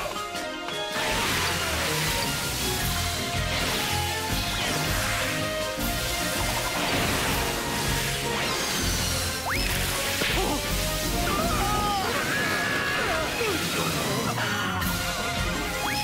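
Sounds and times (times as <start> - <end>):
cartoon background music: 0.0 - 16.0.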